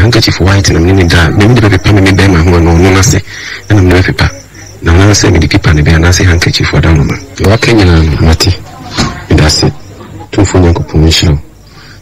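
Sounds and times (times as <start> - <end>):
man's voice in drawn-out tones: 0.0 - 11.6.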